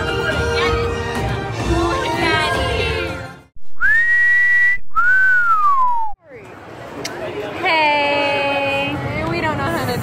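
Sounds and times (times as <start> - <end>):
music: 0.0 - 3.5
two-note wolf whistle: 3.8 - 6.2.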